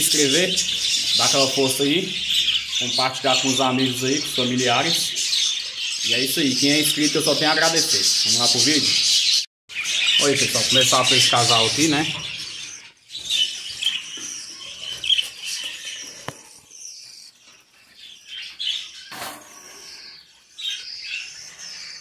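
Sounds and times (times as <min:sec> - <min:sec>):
budgerigars chirping: 0:00.0 - 0:22.0.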